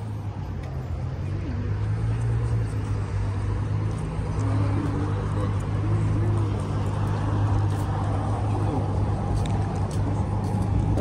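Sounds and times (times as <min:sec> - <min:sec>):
vehicle engine rumbling: 0:00.0 - 0:11.0
faint voices: 0:00.9 - 0:11.0.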